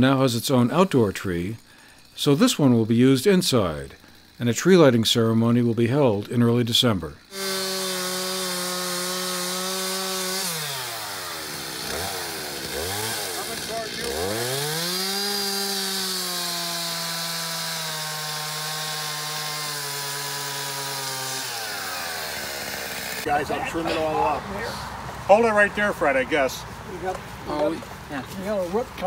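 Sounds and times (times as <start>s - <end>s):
chainsaw revving and cutting: 1.3s - 6.5s, 7.2s - 24.0s.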